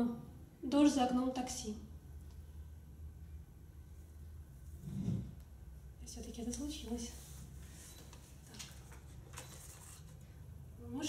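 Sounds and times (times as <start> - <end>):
woman speaking: 0.0 - 1.9, 6.0 - 7.3, 10.8 - 11.0
steady low hum: 0.0 - 9.4.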